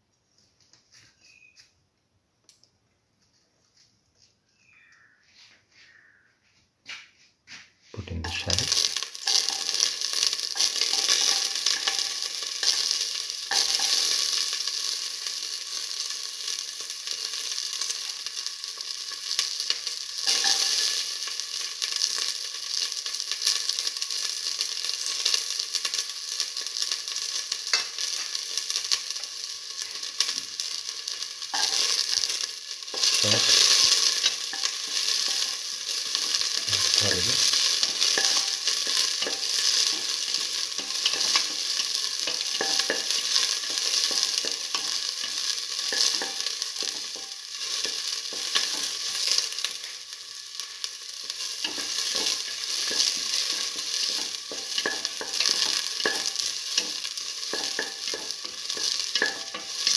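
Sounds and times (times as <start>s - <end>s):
shallots sizzling in oil: 8.0s - 59.9s.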